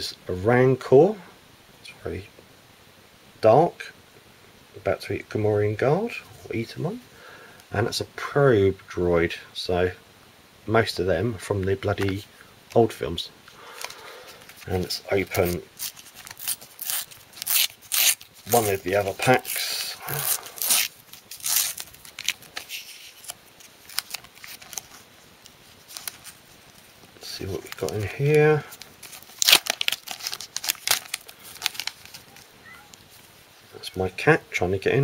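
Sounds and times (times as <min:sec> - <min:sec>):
plastic packet crinkling and tearing: 0:13.6 - 0:33.2
wrapper being torn open: 0:13.7 - 0:33.1.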